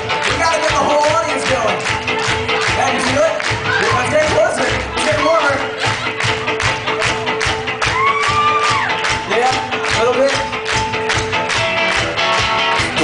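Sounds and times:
drums: 0.0 - 13.0
live rock band playing: 0.0 - 13.0.

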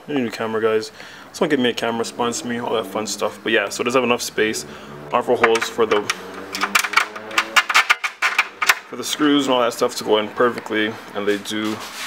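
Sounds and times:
fingers clicking and tapping metal: 5.4 - 9.0.

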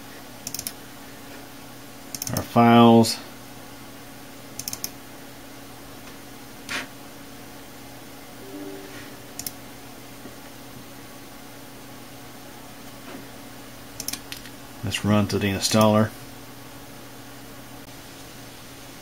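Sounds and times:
computer mouse clicks: 0.4 - 0.8, 2.1 - 2.4, 4.6 - 5.0, 14.0 - 14.5.

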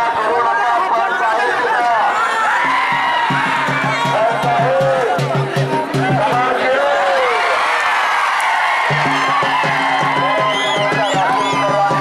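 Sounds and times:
crowd voices and shouts: 0.0 - 12.0
drum beaten in fast rhythm: 2.5 - 6.9, 8.8 - 12.0.

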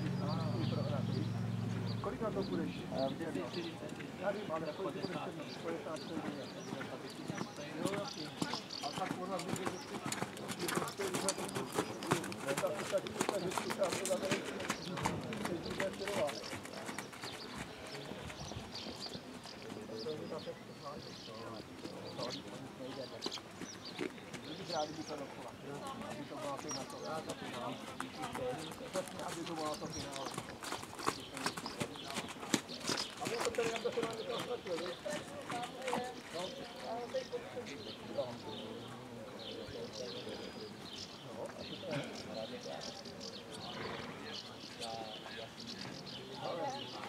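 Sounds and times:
people talking: 0.0 - 23.4, 24.1 - 47.0
horse hoofbeats on sand: 4.6 - 20.1, 23.0 - 37.4.

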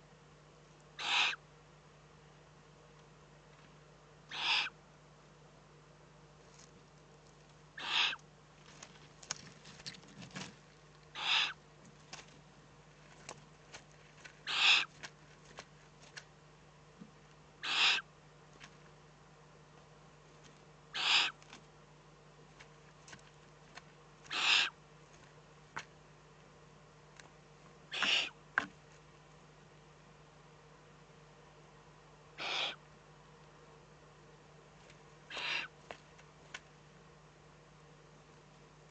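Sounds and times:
owl chicks hissing begging calls: 1.0 - 1.4, 4.3 - 4.8, 7.8 - 8.2, 11.1 - 11.6, 14.4 - 15.0, 17.6 - 18.1, 20.9 - 21.5, 24.2 - 24.8, 27.9 - 28.4, 32.4 - 32.8, 35.3 - 35.8.

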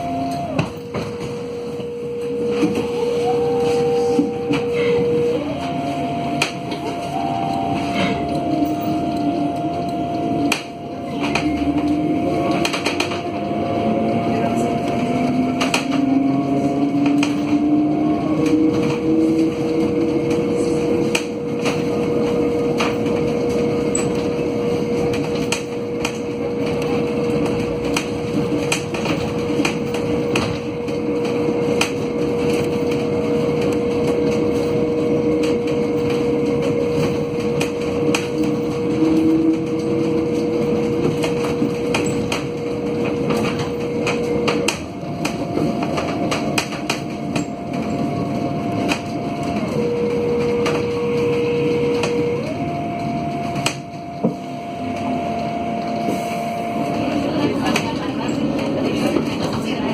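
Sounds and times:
electric bus drive whine: 0.0 - 59.9
road rumble: 0.0 - 59.9.

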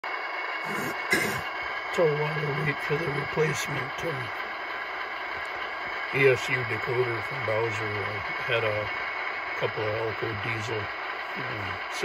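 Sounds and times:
diesel engine idling from small speaker: 0.1 - 12.0.

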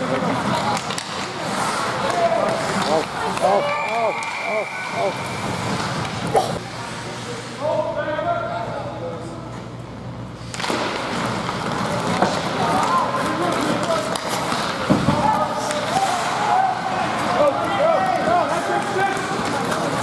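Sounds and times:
skates and sticks on ice: 0.0 - 7.5, 10.4 - 20.0
people shouting: 3.2 - 5.4.

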